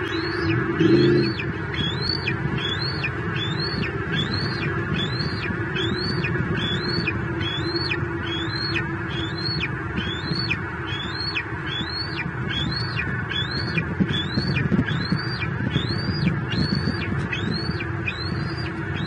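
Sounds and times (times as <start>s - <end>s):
steady rushing noise: 0.0s - 19.0s.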